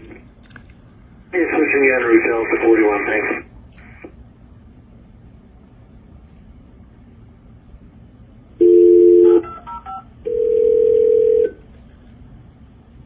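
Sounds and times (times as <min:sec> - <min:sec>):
two-note dial tone: 0:08.6 - 0:09.5, 0:10.3 - 0:11.6
keypad dialing tones: 0:08.6 - 0:11.6
telephone ringing tone: 0:08.6 - 0:11.6.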